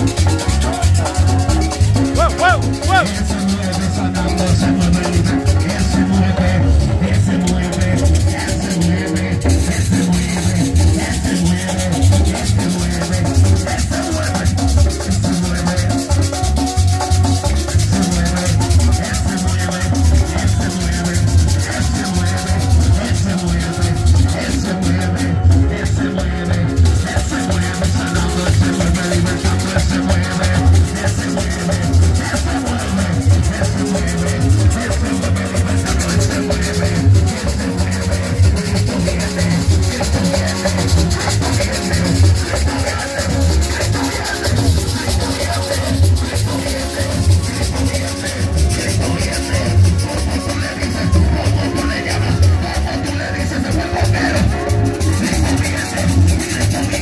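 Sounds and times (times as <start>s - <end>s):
band playing dance beat: 0.0s - 57.0s
conga drums: 0.0s - 57.0s
electronic keyboard with heavy bass: 0.0s - 57.0s
guira scraped in fast rhythm: 0.0s - 57.0s
man singing into microphone: 0.0s - 57.0s.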